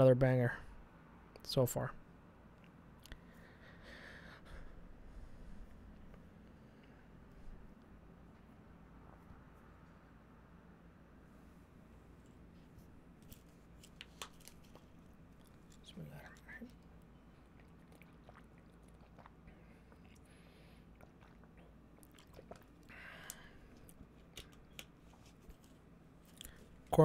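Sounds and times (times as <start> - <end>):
man drinking and swallowing: 17.5 - 24.2.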